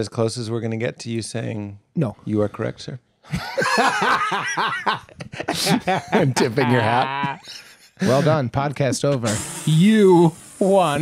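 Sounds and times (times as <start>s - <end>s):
men laughing into microphones: 3.3s - 9.3s.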